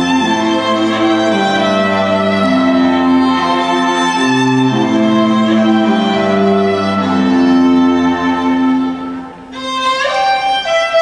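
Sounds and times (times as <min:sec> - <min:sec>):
violin string music: 0:00.0 - 0:11.0.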